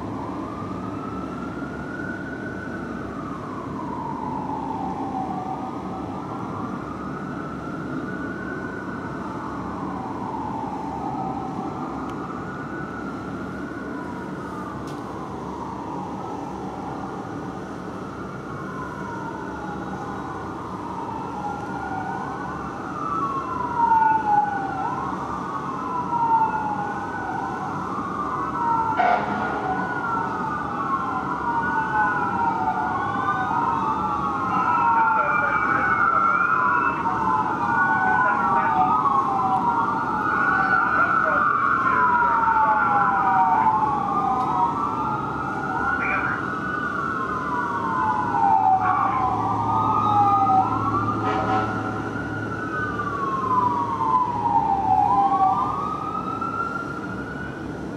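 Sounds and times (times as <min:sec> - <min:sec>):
fire engine wail sirens: 0:00.0 - 0:57.9.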